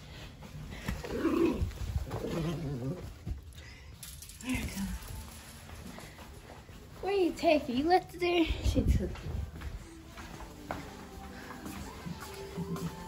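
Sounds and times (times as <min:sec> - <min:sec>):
dog growling in play: 0:00.8 - 0:03.3.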